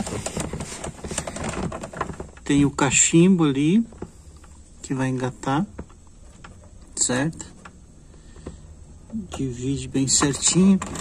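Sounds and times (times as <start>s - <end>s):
small clicks and light knocks: 5.3s - 9.5s.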